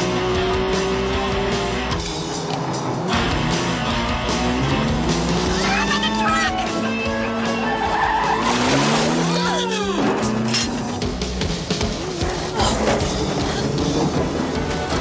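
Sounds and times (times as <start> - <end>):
film soundtrack music: 0.0 - 15.0
tyres squealing: 5.4 - 10.9.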